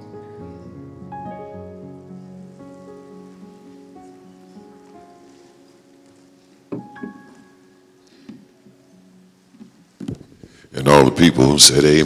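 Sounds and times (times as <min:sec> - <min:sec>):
synthesizer soft sustained chords: 0:00.0 - 0:09.5.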